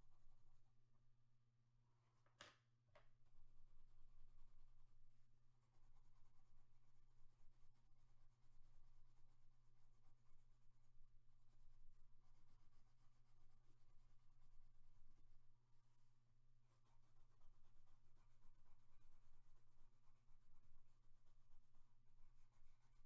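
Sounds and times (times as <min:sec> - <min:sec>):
pencil scratching on paper: 0:03.2 - 0:23.0.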